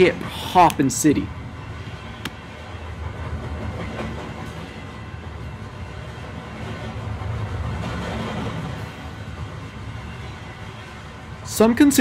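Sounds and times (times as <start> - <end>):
train running on rails: 0.0 - 12.0.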